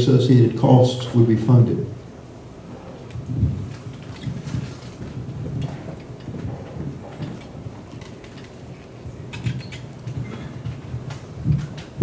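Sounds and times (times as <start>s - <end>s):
microphone handling rumbles and bumps: 2.3s - 12.0s.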